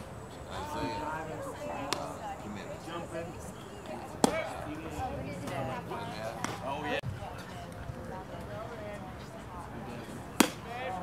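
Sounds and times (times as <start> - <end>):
people talking: 0.4 - 11.0
baseball smacking into leather mitt: 4.2 - 4.5, 6.4 - 6.7, 10.4 - 10.6.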